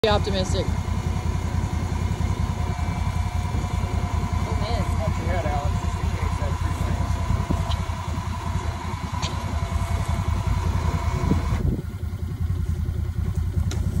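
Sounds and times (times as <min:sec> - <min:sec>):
utv engine running at low revs: 0:00.0 - 0:14.0.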